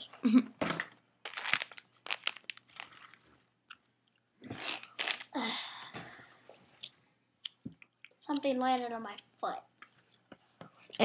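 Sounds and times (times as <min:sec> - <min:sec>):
cracker box packaging crinkling: 0:01.2 - 0:03.3, 0:04.7 - 0:05.4.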